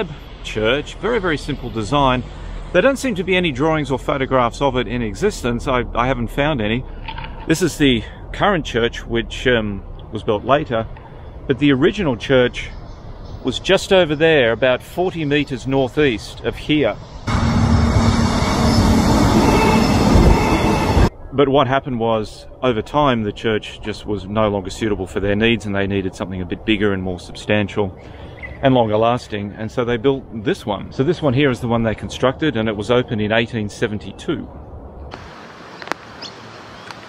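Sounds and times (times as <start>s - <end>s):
steady hiss: 0.0s - 3.8s
train wheels rushing on rails: 17.3s - 21.1s.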